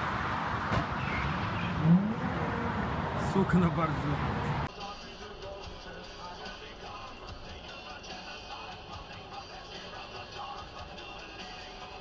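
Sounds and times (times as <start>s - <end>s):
car engine revving: 0.0s - 4.7s.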